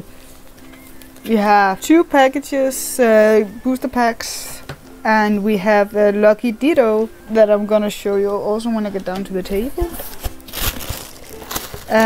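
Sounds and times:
tissue paper rustling: 9.6 - 12.0.

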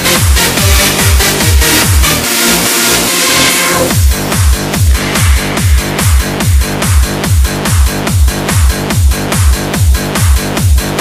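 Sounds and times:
kick drum: 0.0 - 2.4, 3.9 - 11.0
held synth chords: 0.0 - 9.3
electronic dance track: 0.0 - 11.0
hissing noise sweep: 3.5 - 7.2.

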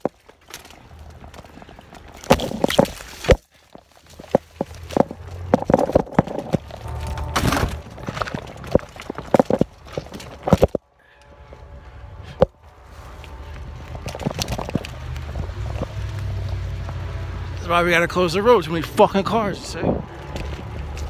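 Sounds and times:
footsteps on dirt and rock: 0.0 - 17.7, 19.8 - 21.0
phone microphone being jostled: 1.2 - 10.9, 13.9 - 16.1.

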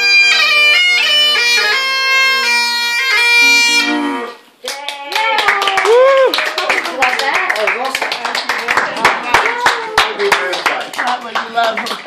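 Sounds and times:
group clapping: 0.1 - 1.7, 4.6 - 12.0.

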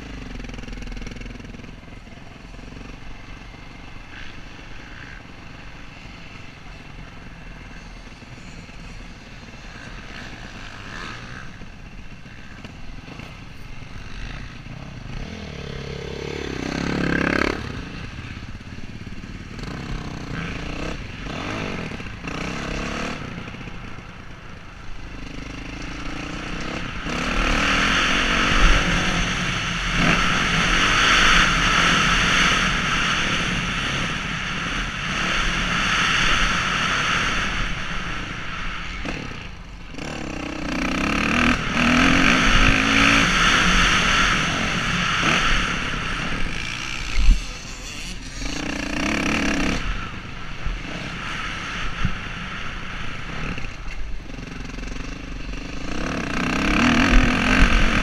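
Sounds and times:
dirt bike engine revving: 7.8 - 58.0.

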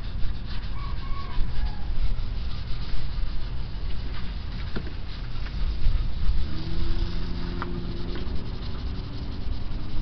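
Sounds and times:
cloth rubbing on plastic: 0.0 - 10.0
faint low hum: 0.0 - 10.0
low rumble: 1.4 - 10.0.

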